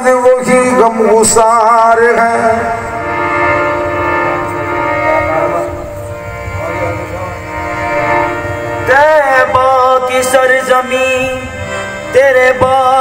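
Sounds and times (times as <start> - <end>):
harmonium chords: 0.0 - 13.0.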